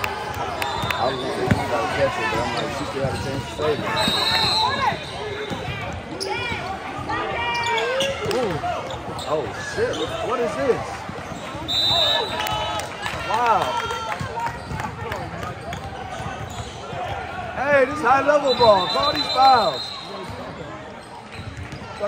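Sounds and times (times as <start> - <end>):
referee whistle: 0.6 - 1.8, 3.3 - 5.8, 11.6 - 12.8, 18.2 - 20.3
basketball bouncing on court: 0.8 - 2.0, 14.1 - 17.2
people shouting in gym: 3.7 - 9.1.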